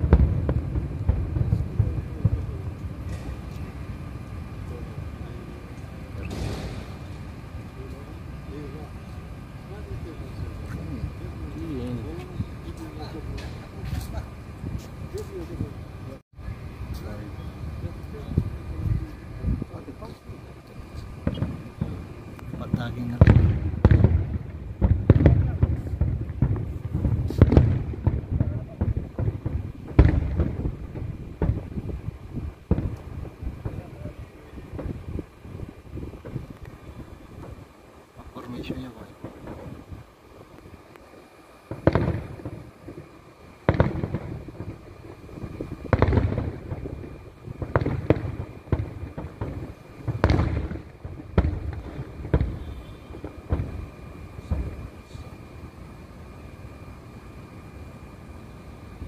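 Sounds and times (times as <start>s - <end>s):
firework shells bursting: 0.0s - 16.1s, 16.8s - 58.0s.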